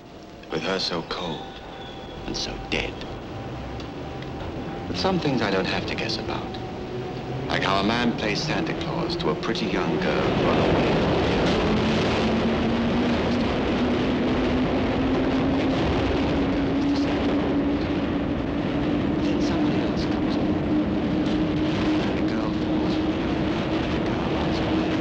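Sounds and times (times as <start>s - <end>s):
rising whine: 0.0s - 25.0s
underground train rumble: 0.0s - 25.0s.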